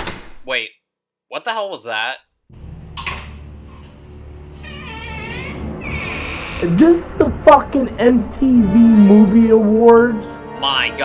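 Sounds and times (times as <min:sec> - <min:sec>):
door latch click: 0:00.0 - 0:00.4
door hinge creaking: 0:02.9 - 0:07.2
low rumble: 0:04.2 - 0:10.4.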